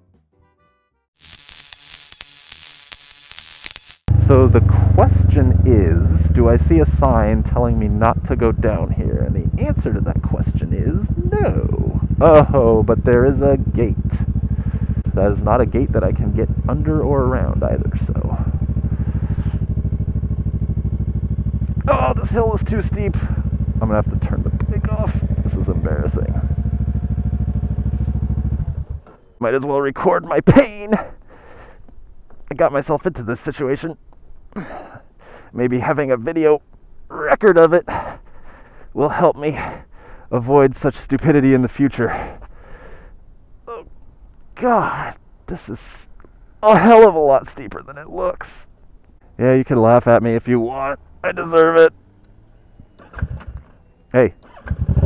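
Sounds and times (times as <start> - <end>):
motorcycle engine idling: 4.1 - 29.4.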